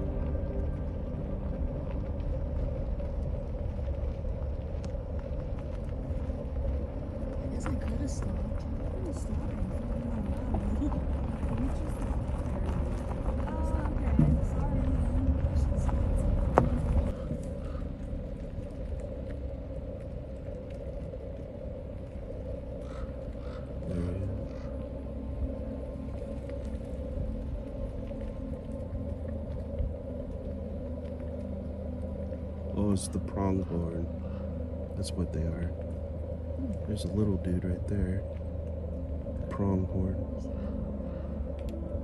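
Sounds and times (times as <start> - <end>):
car engine and tyre rumble: 0.0 - 42.0.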